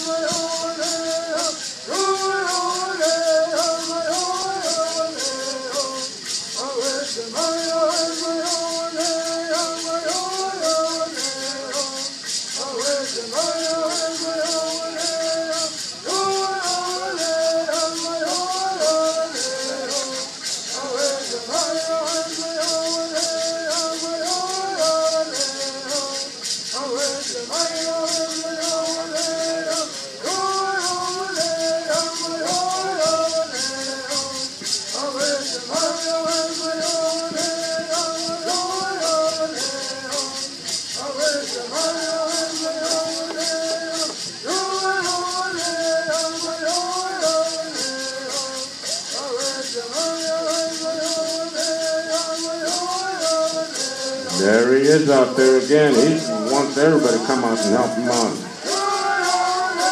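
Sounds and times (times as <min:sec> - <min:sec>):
gourd rattles shaken: 0:00.0 - 0:59.9
men singing in unison: 0:00.0 - 0:59.9.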